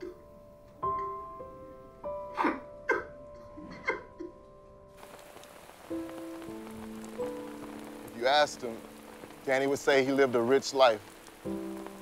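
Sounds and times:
music of long held notes: 4.6 - 12.0
steady rain falling: 5.0 - 12.0.

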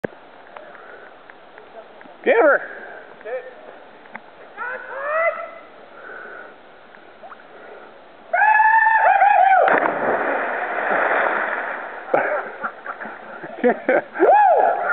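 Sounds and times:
water noise: 0.0 - 14.9
person whooping: 4.6 - 5.7, 8.3 - 9.7, 14.2 - 14.9
long high scream: 8.3 - 9.7
loud splash into water: 9.5 - 12.4.

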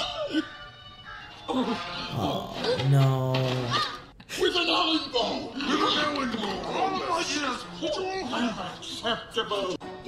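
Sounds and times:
background music: 0.0 - 10.0
animated character voices: 2.1 - 4.0.

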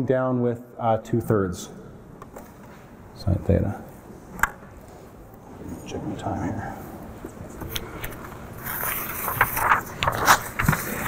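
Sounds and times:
paper rustling near microphone: 7.2 - 11.0.

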